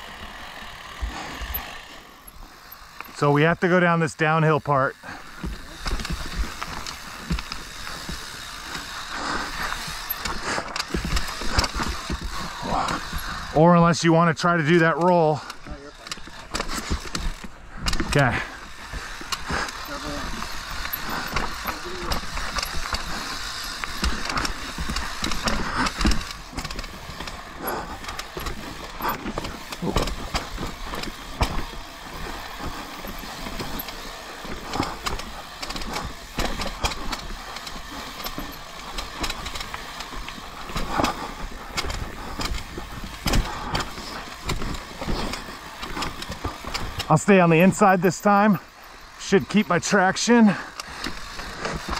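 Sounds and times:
bike knocking and rattling: 0:00.0 - 0:51.9
bike tyres on dirt and rock: 0:00.0 - 0:51.9.

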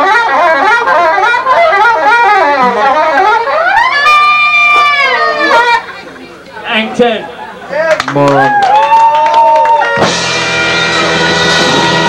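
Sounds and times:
live ska band with horns: 0:00.0 - 0:06.1, 0:09.8 - 0:12.0
wavering lead melody: 0:00.0 - 0:06.1.

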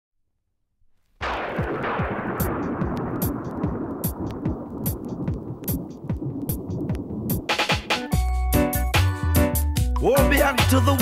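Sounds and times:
falling low electronic zaps: 0:01.2 - 0:07.8
dense noisy burst: 0:01.2 - 0:08.2.

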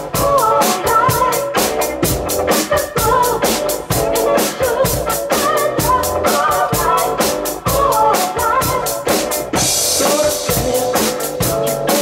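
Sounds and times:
acoustic drum kits playing a beat: 0:00.0 - 0:12.0
recorded backing song: 0:00.0 - 0:12.0.

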